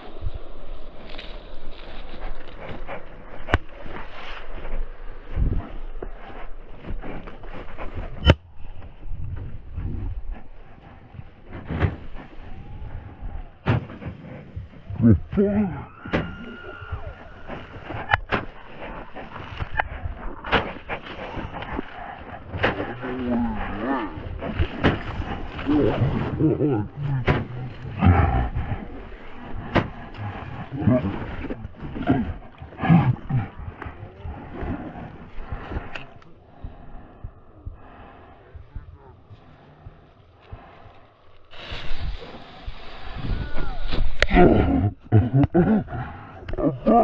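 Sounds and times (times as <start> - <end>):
person's drawn-out low voice: 14.6 - 16.1, 21.2 - 40.8, 43.2 - 47.0
wind hiss on microphone: 41.4 - 44.3.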